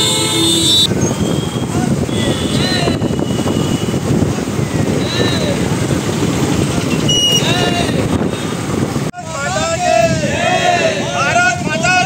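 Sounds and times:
motorcycle engines rumbling: 0.0 - 12.0
voices calling: 0.0 - 12.0
crowd of riders shouting: 7.3 - 8.4, 9.2 - 12.0.

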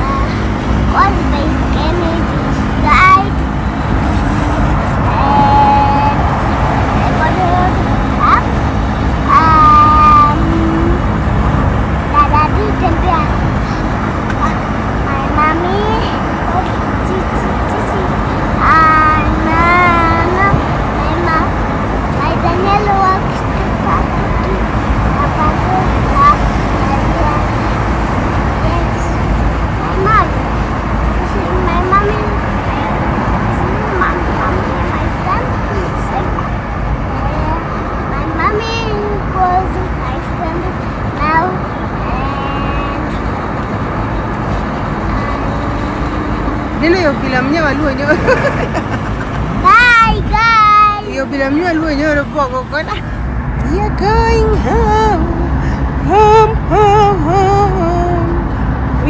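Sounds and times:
car road rumble: 0.0 - 59.0
voices: 0.0 - 59.0
child calling out: 9.3 - 11.0, 49.6 - 51.2.

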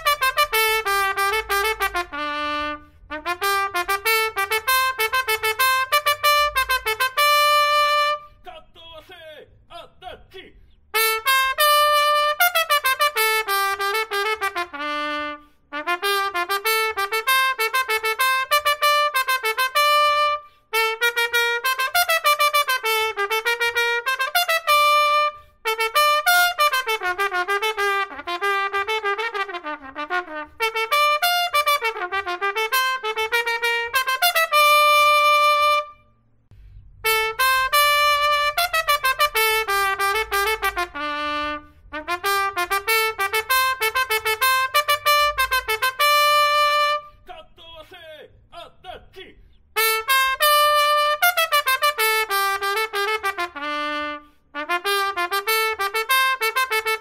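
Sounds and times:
solo trumpet melody: 0.0 - 8.4, 10.9 - 36.2, 37.0 - 47.3, 49.8 - 57.0.

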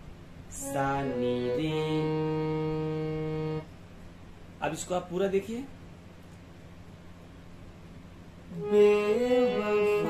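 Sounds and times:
harmonium sustained note: 0.5 - 3.7, 8.5 - 10.0.

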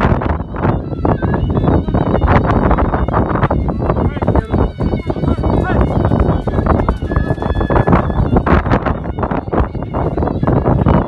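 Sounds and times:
shrill zurna: 0.0 - 11.0.

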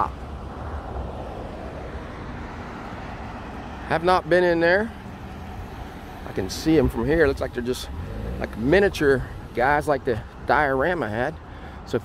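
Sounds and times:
low traffic rumble: 0.0 - 12.0
hiss of passing vehicles: 4.8 - 10.4.

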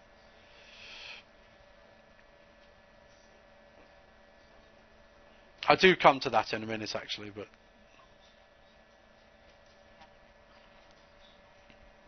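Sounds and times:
faint electrical hum: 0.0 - 12.0
breath hiss close to microphone: 0.3 - 1.3.

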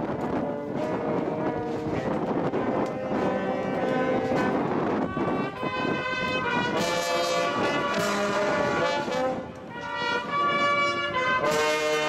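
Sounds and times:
marching brass band: 0.0 - 12.0.

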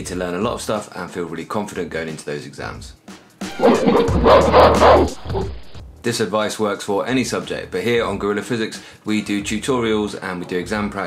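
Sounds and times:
animal-like call: 3.5 - 5.7
intro music sting: 3.5 - 5.8.

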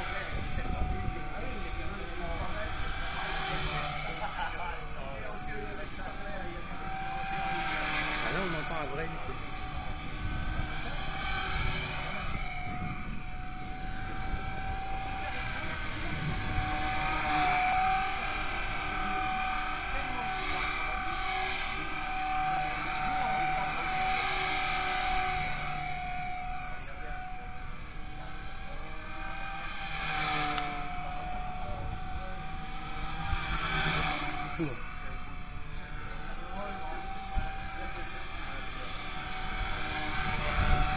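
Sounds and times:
rc helicopter whine: 0.0 - 40.9
wind on microphone: 0.0 - 40.9.

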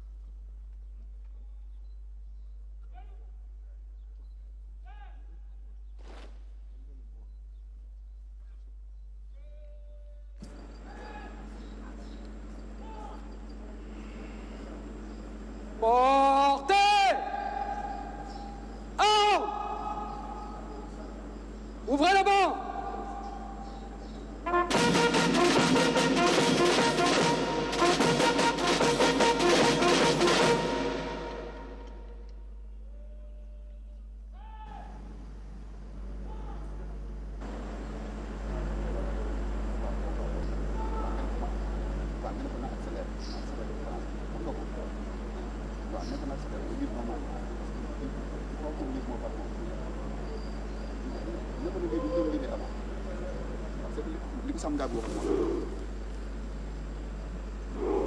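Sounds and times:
electrical hum: 0.0 - 58.0
military band with drums and brass: 24.4 - 32.1.

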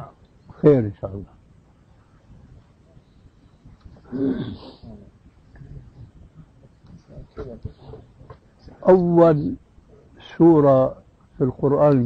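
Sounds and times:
short breathy vocal sound: 4.1 - 5.1.

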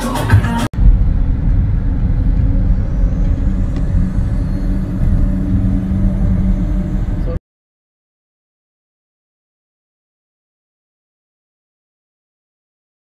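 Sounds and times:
car road rumble inside cabin: 0.8 - 7.4
constant hum: 0.8 - 7.4.

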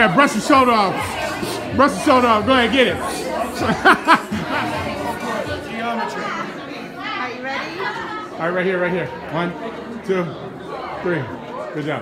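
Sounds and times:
people chattering: 0.0 - 12.0
person laughing: 3.0 - 5.2.

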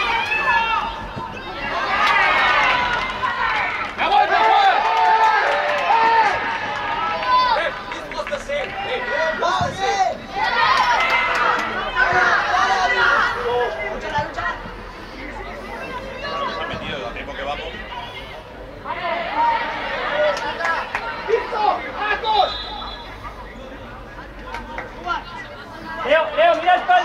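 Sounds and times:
players shouting calls: 0.0 - 27.0
spectator chatter: 0.0 - 27.0.

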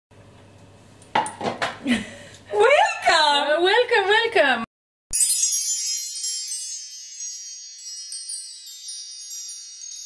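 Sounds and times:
shimmering bell-like chimes: 5.1 - 10.0.

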